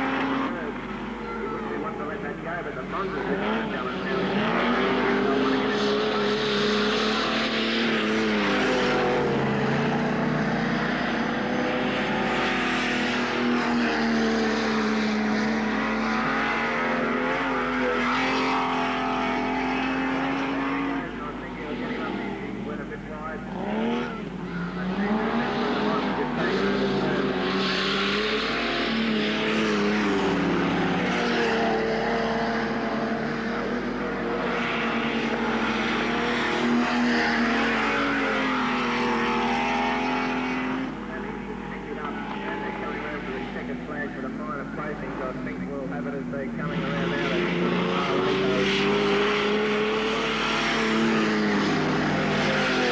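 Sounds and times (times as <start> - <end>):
racing car engines: 0.0 - 52.9.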